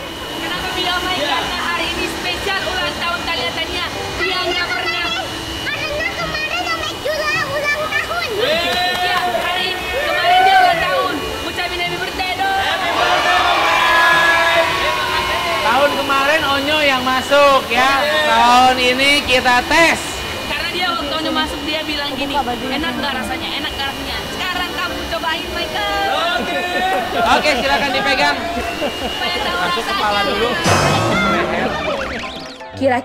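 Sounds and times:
girl talking excitedly: 4.7s - 8.4s
voices chattering: 20.2s - 33.0s.

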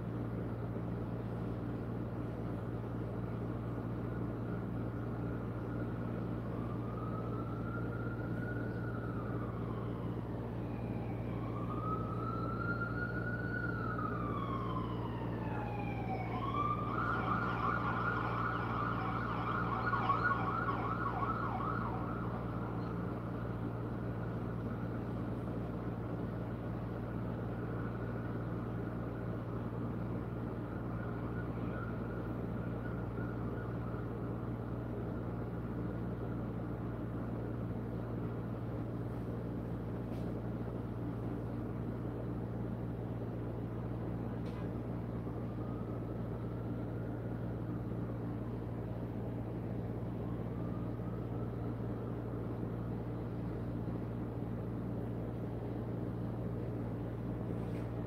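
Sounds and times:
emergency vehicle siren wailing: 2.5s - 58.0s.

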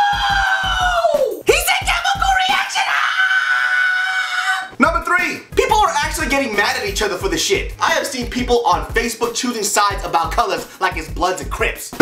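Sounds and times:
background music with beat: 0.0s - 2.6s, 4.7s - 12.0s.

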